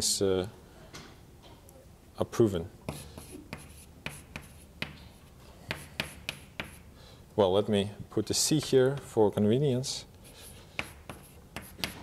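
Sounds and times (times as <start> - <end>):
chalk tapping and scratching: 2.8 - 6.9, 10.2 - 12.0.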